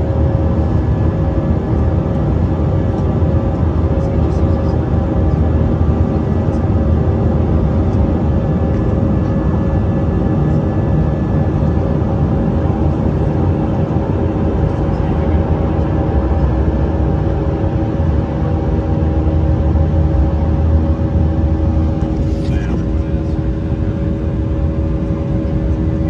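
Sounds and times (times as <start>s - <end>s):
jet engines in passenger cabin: 0.0s - 26.0s.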